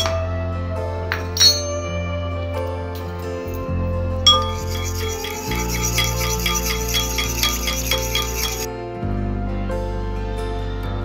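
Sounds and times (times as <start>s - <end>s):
background music: 0.0s - 11.0s
spoon clink: 4.3s - 8.7s
spoon scraping a bowl: 4.3s - 8.7s.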